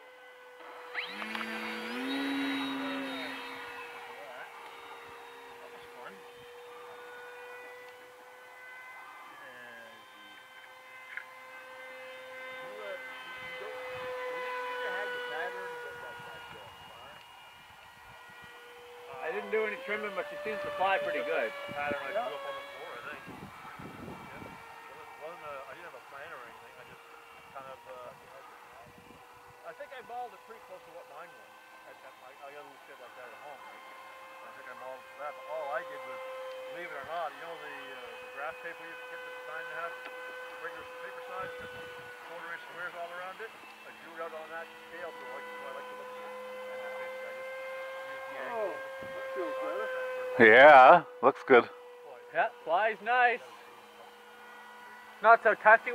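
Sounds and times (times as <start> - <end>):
model plane motor whine: 0.0 - 55.9.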